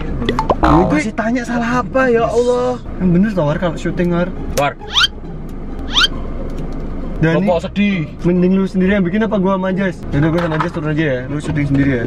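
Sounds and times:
sharply rising squeaks: 4.8 - 5.2, 5.8 - 6.3.

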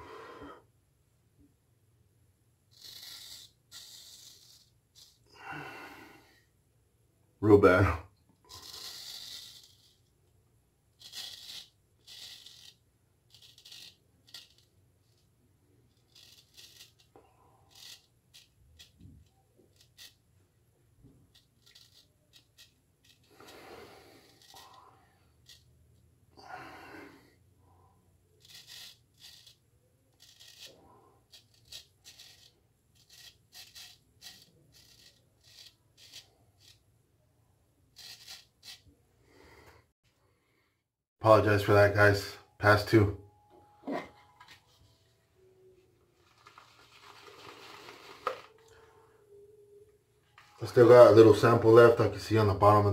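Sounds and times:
razor scraping stubble: 2.7 - 5.2, 8.5 - 10.1, 11.0 - 15.3, 15.9 - 20.2, 21.0 - 25.7, 28.4 - 36.8, 37.9 - 38.9.

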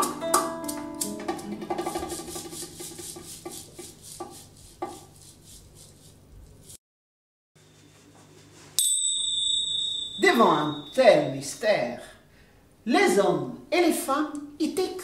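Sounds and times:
classical guitar notes: 0.0 - 1.9
steady high ringing tone: 8.8 - 11.6
woman speaking: 10.2 - 12.2, 12.8 - 15.0.

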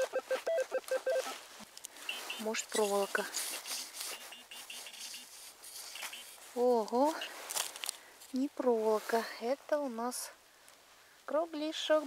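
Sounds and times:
metal detector beeping: 0.0 - 1.4, 2.0 - 6.4.

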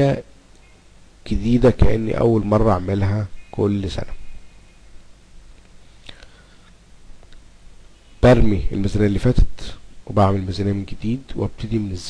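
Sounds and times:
low steady hum: 0.0 - 12.0
breath or mouth click: 6.0 - 7.5.

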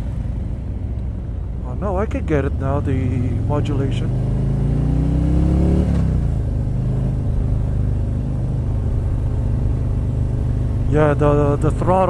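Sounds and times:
motorcycle engine revving: 2.2 - 12.0.

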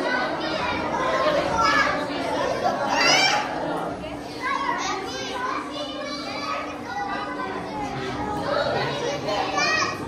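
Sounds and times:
children calling out: 0.0 - 10.0
crowd chatter: 0.0 - 10.0.

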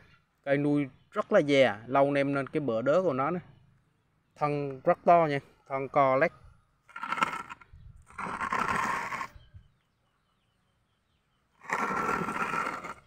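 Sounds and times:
plastic pot scraping on concrete: 6.9 - 9.5, 11.6 - 13.0.

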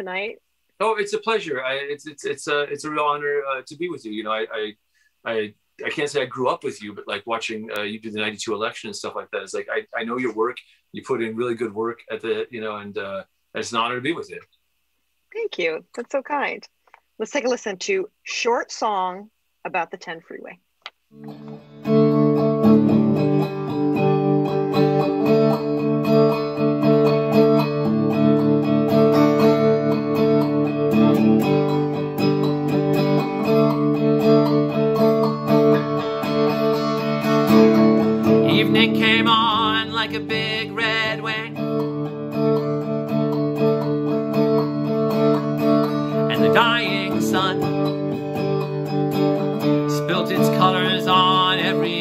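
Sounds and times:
solo electric guitar: 21.2 - 52.0.

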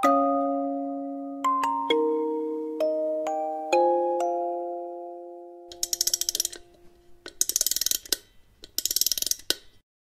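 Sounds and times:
rapid mechanical clicking: 5.7 - 6.6, 7.4 - 9.7.

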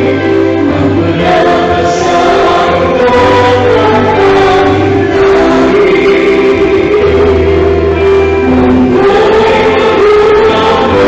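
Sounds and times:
gospel choir singing: 0.0 - 11.0.

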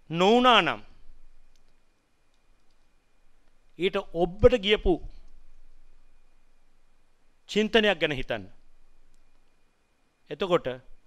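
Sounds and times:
soft clicks: 1.4 - 3.8, 8.6 - 9.6
man speaking at a microphone: 3.8 - 5.1.

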